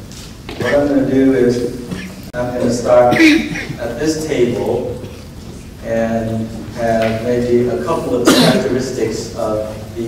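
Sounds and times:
man coughing: 0:00.6 - 0:00.9, 0:01.9 - 0:02.2, 0:03.1 - 0:03.9, 0:08.2 - 0:08.7
man speaking: 0:00.6 - 0:05.1.

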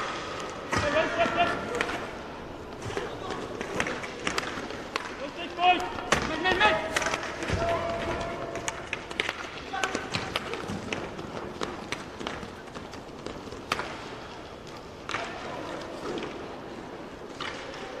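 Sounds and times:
hockey sticks and skates clacking: 0:00.0 - 0:18.0.

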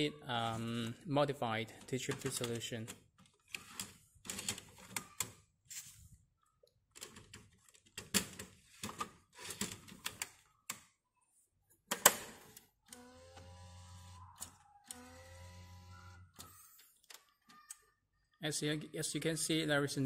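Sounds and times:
plastic clicks and rattles: 0:06.9 - 0:10.9
printer motor humming: 0:12.9 - 0:16.6.

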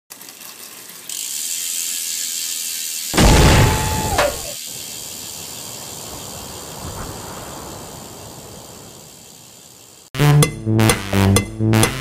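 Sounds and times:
fast ratcheting buzz: 0:00.1 - 0:06.6.

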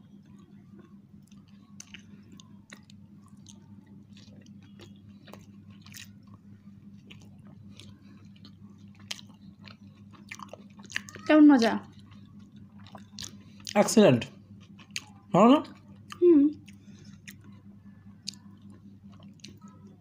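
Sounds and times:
faint low hum: 0:00.0 - 0:20.0
people chewing pizza: 0:00.0 - 0:20.0.

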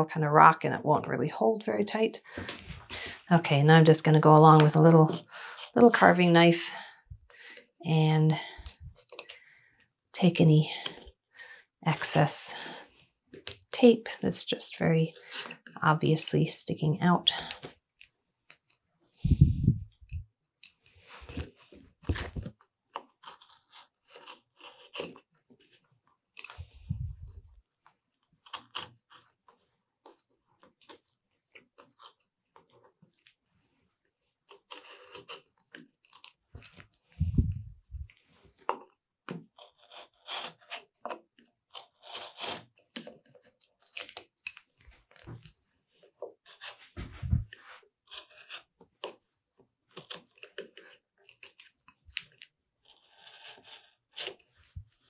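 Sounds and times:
knife cutting and scraping tape: 0:22.1 - 0:27.2, 0:28.2 - 0:33.0, 0:34.4 - 0:45.3, 0:46.1 - 0:49.2, 0:50.0 - 0:55.0.

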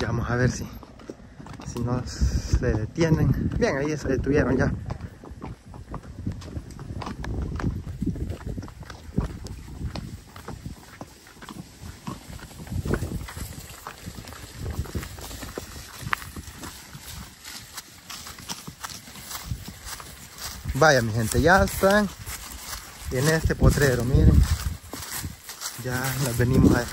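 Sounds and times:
horse hooves clopping on dirt: 0:00.0 - 0:26.9.

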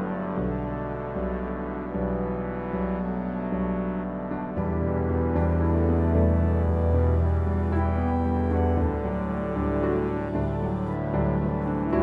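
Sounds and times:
background music with low held notes: 0:00.0 - 0:12.0.

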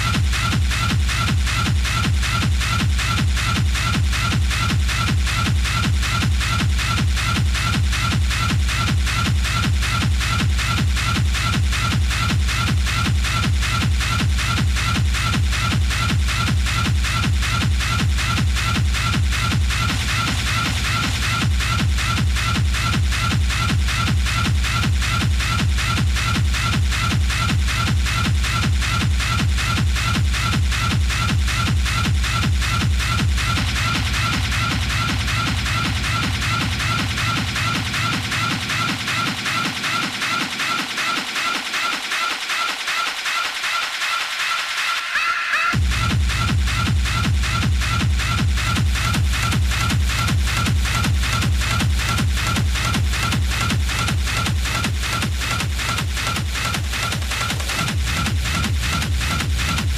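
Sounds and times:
pounding kick drum beat: 0:00.0 - 0:44.7, 0:45.7 - 0:59.9
hard techno dj mix: 0:00.0 - 0:59.9.

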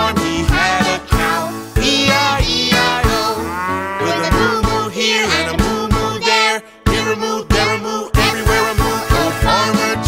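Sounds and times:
children's song music: 0:00.0 - 0:10.0
cartoon cow mooing: 0:02.7 - 0:05.2.

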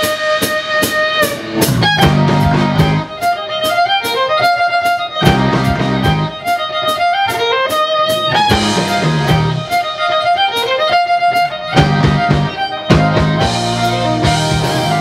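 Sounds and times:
fiddle melody: 0:00.0 - 0:15.0
rock band playing: 0:00.0 - 0:15.0.

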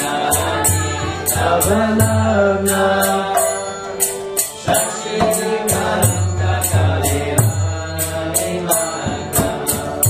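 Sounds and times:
devotional chanting: 0:00.0 - 0:10.0
hand cymbals striking: 0:00.0 - 0:10.0.

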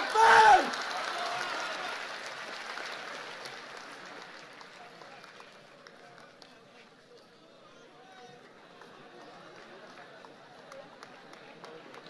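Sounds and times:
audience applauding: 0:00.0 - 0:07.0, 0:08.3 - 0:12.0.

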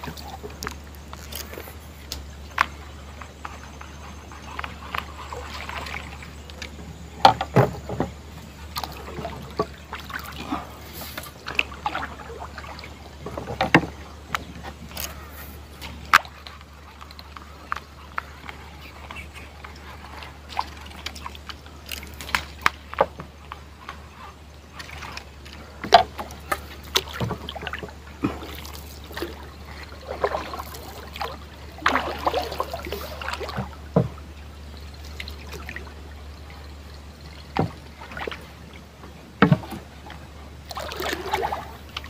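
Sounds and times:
steady low hum: 0:00.0 - 0:42.0
water splashing against boat hull: 0:00.0 - 0:42.0.

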